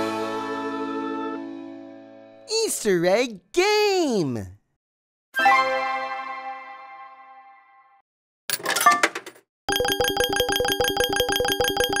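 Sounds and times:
fast bell-like dings: 9.7s - 12.0s
steady ringing tone: 9.7s - 12.0s.

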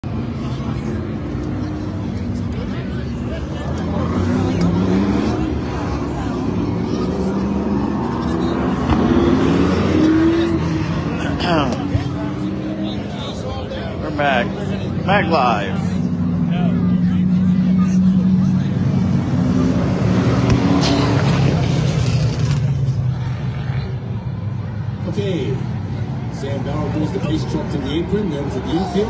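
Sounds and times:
race car engines passing: 0.0s - 29.0s.

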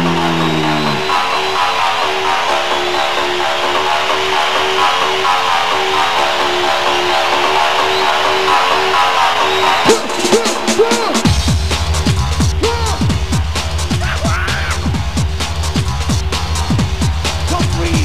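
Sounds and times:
live band guitar riff: 0.0s - 1.2s
falling electronic swoops: 0.0s - 1.7s.

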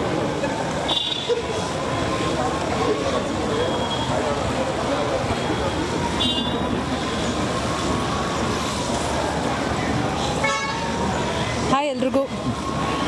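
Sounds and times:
hubbub of voices: 0.0s - 13.0s
traffic: 0.0s - 13.0s.

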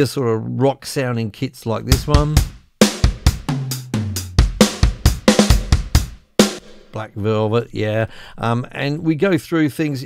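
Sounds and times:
rock drum beat: 1.9s - 7.0s.

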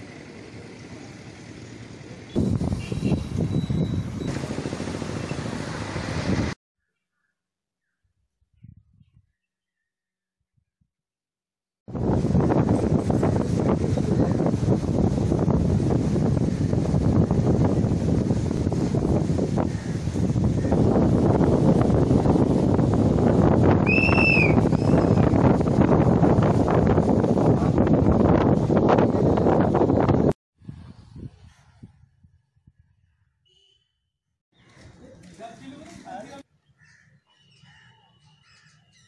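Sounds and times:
wind buffeting microphone: 2.4s - 6.6s, 8.5s - 9.4s, 11.9s - 33.2s.

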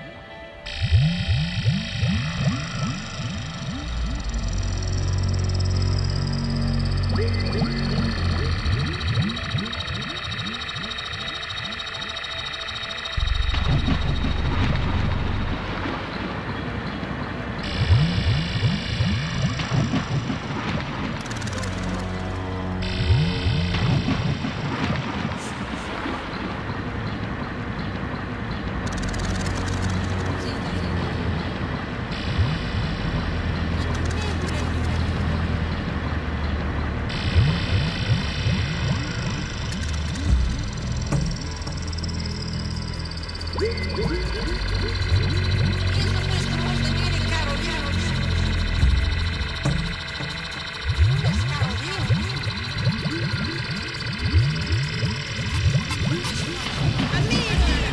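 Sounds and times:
low droning synth bass: 0.6s - 57.9s
high steady synth tones: 0.7s - 17.0s, 17.6s - 25.7s, 37.0s - 57.9s
hissy engine-like texture: 0.7s - 27.2s, 28.8s - 57.9s.

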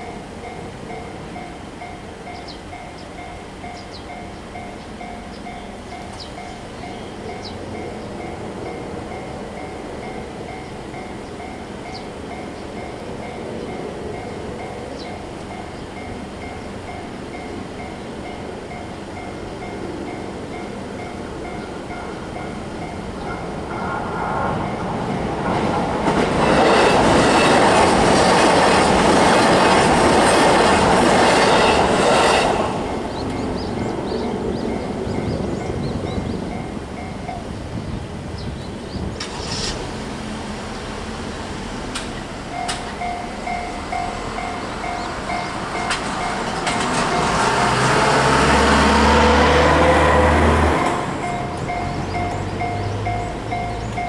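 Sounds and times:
level crossing warning bell: 0.0s - 23.9s, 31.0s - 37.6s, 42.4s - 48.4s, 50.9s - 54.0s
electric train passing: 0.0s - 54.0s.

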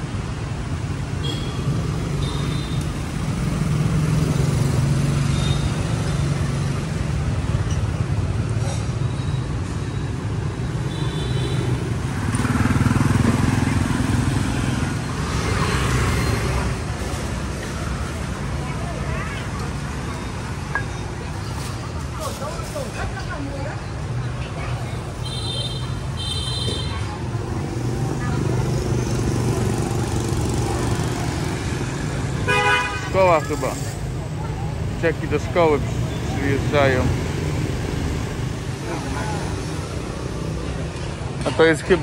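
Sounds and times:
scooters and cars passing: 0.0s - 42.0s.

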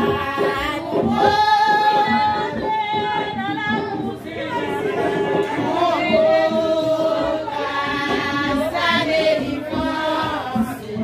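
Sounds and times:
rapid percussion beat: 0.0s - 11.0s
women singing in unison: 0.0s - 11.0s.

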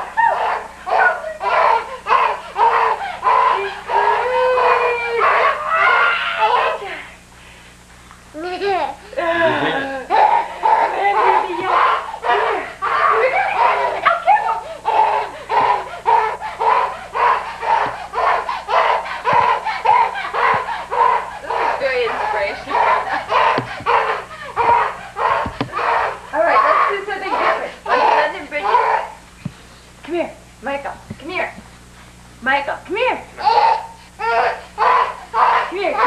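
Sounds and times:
voices talking and calling out: 8.7s - 29.3s, 32.9s - 36.0s.

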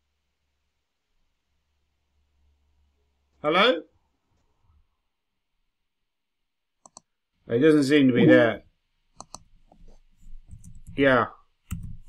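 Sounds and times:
computer mouse clicks: 6.8s - 7.1s, 9.1s - 11.0s, 11.6s - 12.0s
keyboard keystrokes: 9.2s - 9.4s, 11.7s - 12.0s.

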